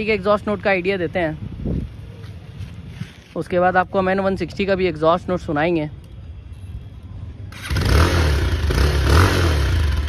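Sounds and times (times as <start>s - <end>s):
motorcycle engine starting and running: 7.5s - 10.0s.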